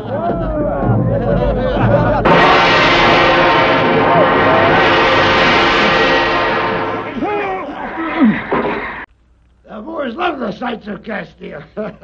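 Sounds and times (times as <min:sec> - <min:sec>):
loud sustained orchestral chord: 0:02.3 - 0:09.0.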